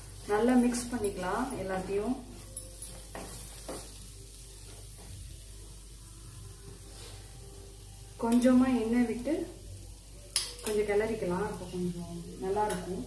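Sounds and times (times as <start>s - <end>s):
faint steady sizzle: 0.0s - 13.0s.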